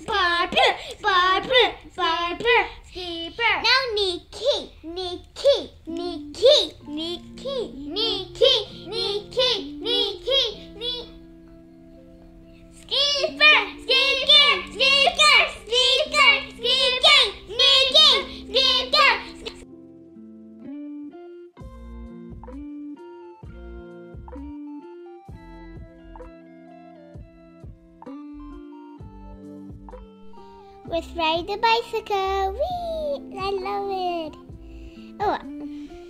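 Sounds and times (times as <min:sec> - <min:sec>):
child singing wordless tune: 0:00.0 - 0:19.6, 0:30.3 - 0:36.0
faint background music: 0:00.0 - 0:36.0.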